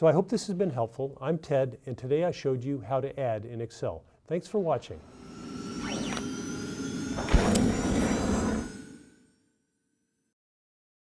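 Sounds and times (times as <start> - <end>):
sweeping whoosh: 4.4 - 9.3
sharp hit: 4.7 - 9.3
sustained ringing tones: 4.9 - 9.4.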